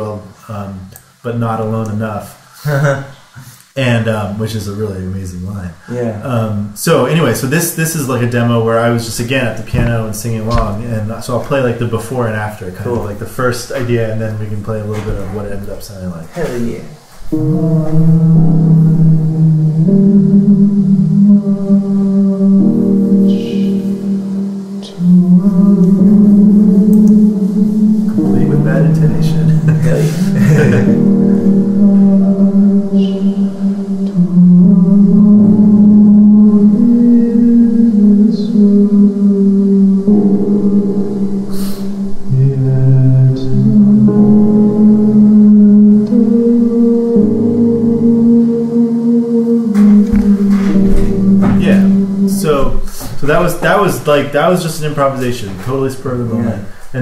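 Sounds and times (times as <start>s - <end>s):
piano chords: 0.0s - 57.0s
man singing: 3.8s - 19.8s, 21.4s - 57.0s.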